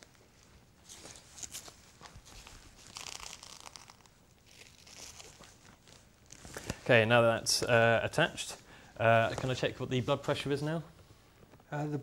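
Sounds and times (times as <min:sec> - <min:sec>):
strap tearing and crinkling: 0:00.9 - 0:06.8.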